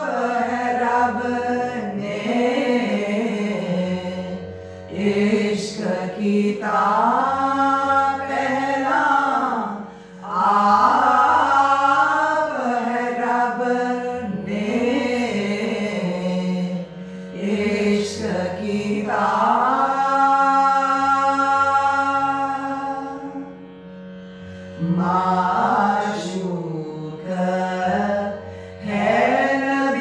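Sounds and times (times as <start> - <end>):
women singing a hymn: 0.0 - 16.8, 17.4 - 23.5, 24.8 - 30.0.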